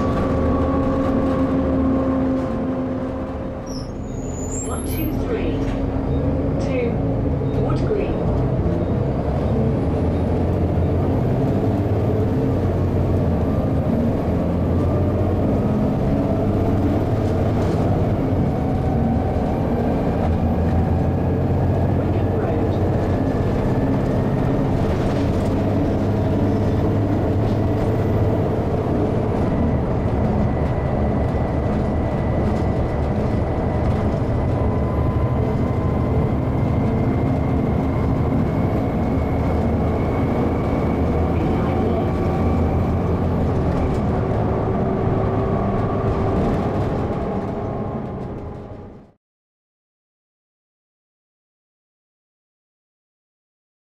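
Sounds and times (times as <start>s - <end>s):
bus diesel engine drone: 0.0s - 49.2s
gearbox whine rising in pitch: 25.5s - 48.9s.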